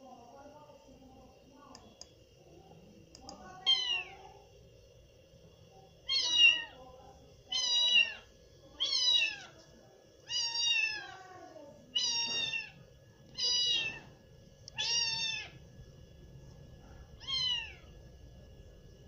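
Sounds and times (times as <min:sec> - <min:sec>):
cat meowing: 0:03.6 - 0:04.2, 0:06.0 - 0:06.8, 0:07.5 - 0:08.2, 0:08.8 - 0:09.6, 0:10.2 - 0:11.3, 0:11.9 - 0:14.1, 0:14.7 - 0:15.6, 0:17.2 - 0:18.0.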